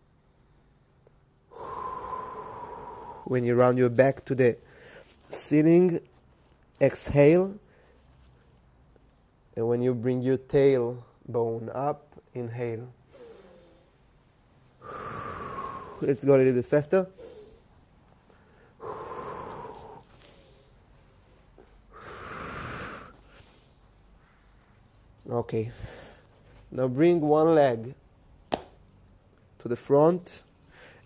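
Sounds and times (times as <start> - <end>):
man breathing with whistle: 1.5 - 3.4, 4.6 - 5.2, 14.8 - 16.1, 18.3 - 20.8, 21.9 - 24.4
man exhaling deeply: 1.5 - 3.4, 13.1 - 14.0, 14.8 - 16.1, 18.4 - 20.7, 21.9 - 23.7.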